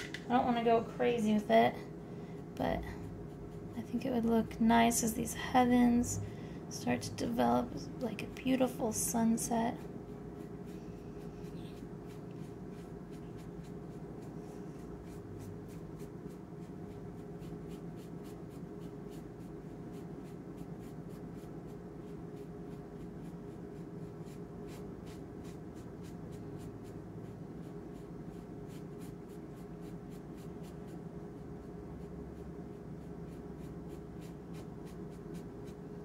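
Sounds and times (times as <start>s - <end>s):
steady low hum: 0.0s - 36.0s
paintbrush stroking on paper: 8.2s - 35.9s.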